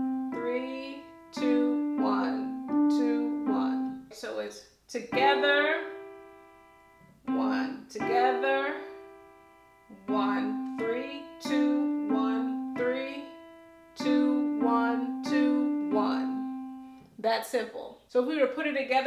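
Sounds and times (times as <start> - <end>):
slow piano melody: 0.0 - 4.1, 5.1 - 17.0.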